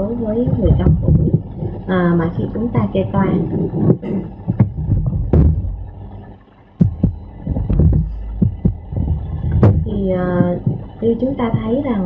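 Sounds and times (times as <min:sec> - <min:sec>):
low thumps: 0:00.0 - 0:12.0
steady low hum: 0:00.0 - 0:12.0.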